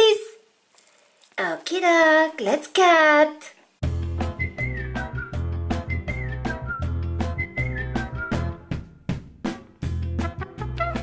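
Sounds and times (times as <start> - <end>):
whistled tune: 4.2 - 8.9.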